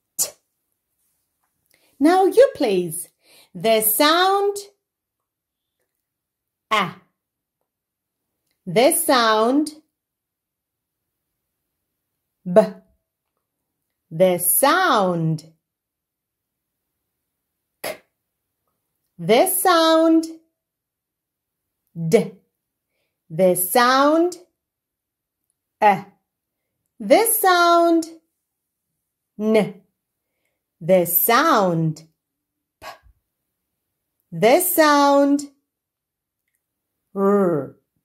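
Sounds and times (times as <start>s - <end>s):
person saying p sound: 0.1s - 0.4s, 6.7s - 7.1s, 12.5s - 12.8s, 17.8s - 18.1s, 32.8s - 33.1s
woman saying a letter: 2.0s - 4.7s, 29.4s - 29.8s.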